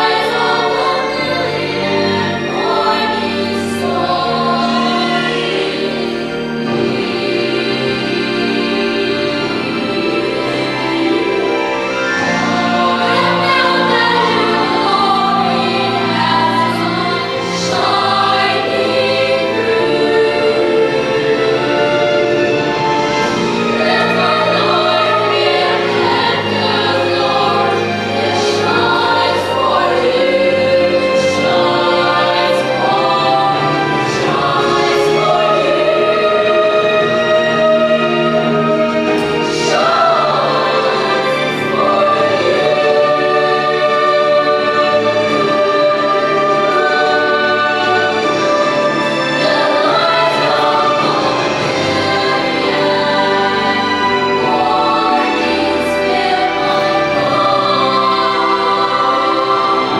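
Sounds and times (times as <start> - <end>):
children's choir singing: 0.0 - 59.9.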